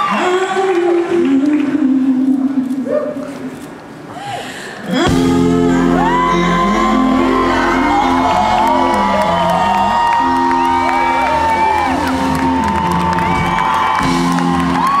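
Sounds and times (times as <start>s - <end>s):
audience whooping and cheering: 0.0s - 0.8s, 5.7s - 15.0s
live soul band music: 5.0s - 15.0s.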